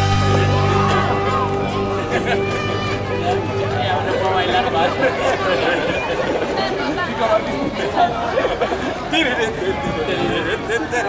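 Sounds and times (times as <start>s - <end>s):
people talking over one another: 0.3s - 11.0s.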